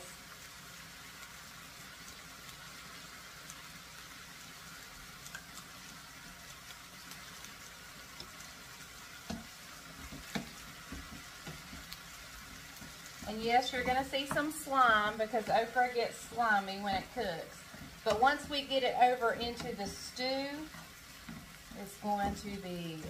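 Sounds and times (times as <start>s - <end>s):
food sizzling in a skillet: 0.0s - 23.0s.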